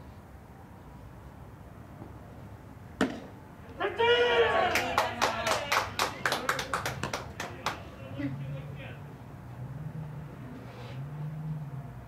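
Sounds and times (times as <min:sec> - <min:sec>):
player shouting: 0:03.8 - 0:06.3
hand claps: 0:04.7 - 0:07.9.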